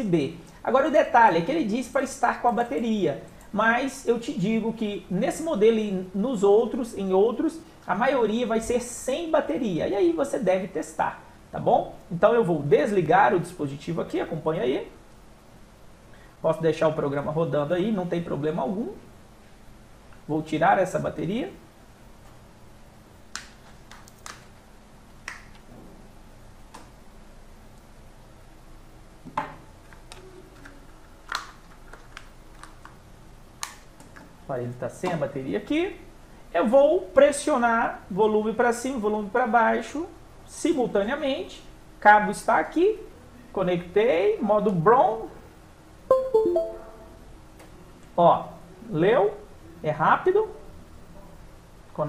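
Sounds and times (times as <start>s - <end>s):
computer notification chime: 46.1s - 47.2s.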